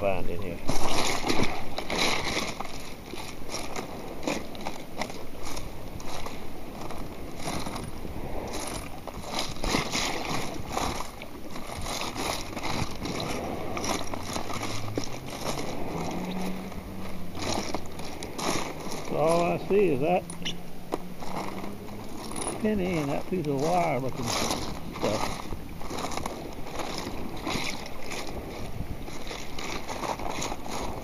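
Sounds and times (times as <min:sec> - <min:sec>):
water sloshing and splashing: 0:00.0 - 0:31.0.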